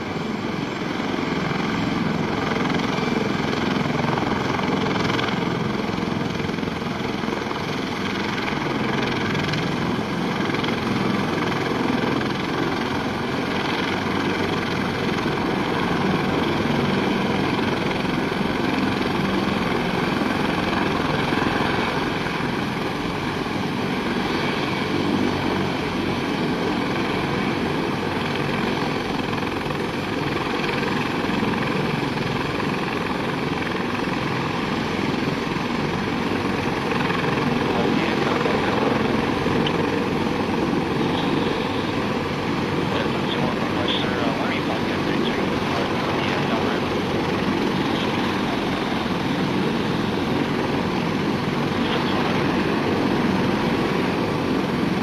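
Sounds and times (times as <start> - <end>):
helicopter rotor and turbine whine: 0.0 - 55.0
nearby helicopter rotors turning: 0.0 - 55.0.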